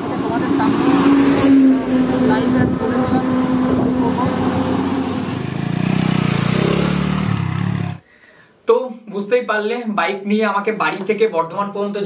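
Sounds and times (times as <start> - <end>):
vehicle engines humming: 0.0 - 8.0.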